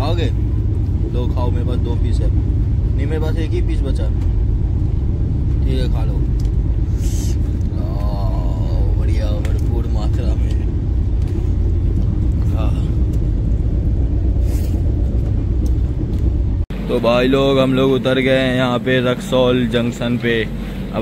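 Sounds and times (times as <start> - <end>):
train rumble inside coach: 0.0 - 21.0
voices talking: 1.0 - 11.2.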